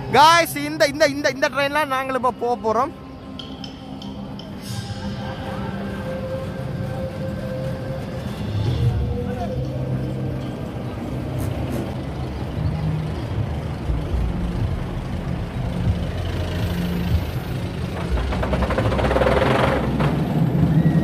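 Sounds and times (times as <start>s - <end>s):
roller coaster rumbling and rattling: 3.3s - 21.0s.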